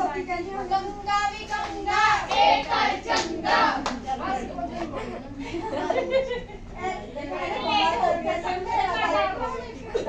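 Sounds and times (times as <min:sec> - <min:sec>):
women's and girls' voices: 0:00.0 - 0:10.0.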